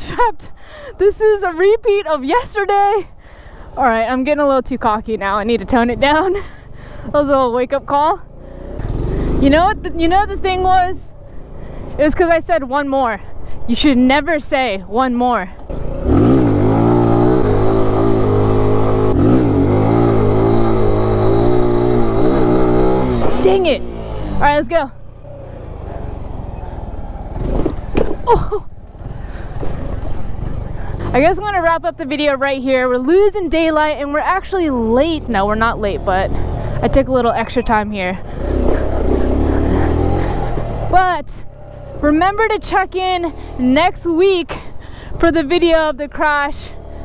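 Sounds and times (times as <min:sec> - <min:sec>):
small motorcycle engine revving: 0:08.3 - 0:10.0, 0:15.7 - 0:31.4, 0:34.6 - 0:43.8.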